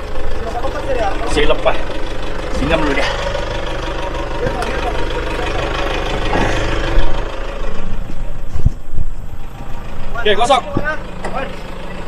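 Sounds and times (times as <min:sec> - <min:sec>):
vehicle thudding over logs: 0:00.0 - 0:11.8
pickup engine at low revs: 0:00.0 - 0:12.0.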